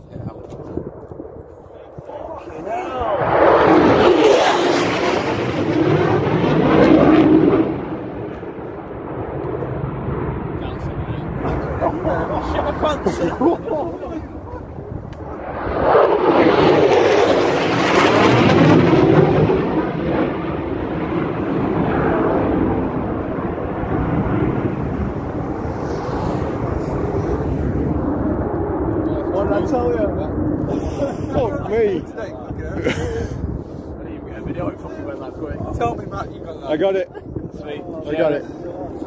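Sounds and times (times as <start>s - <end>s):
jet roaring overhead: 0.0s - 39.0s.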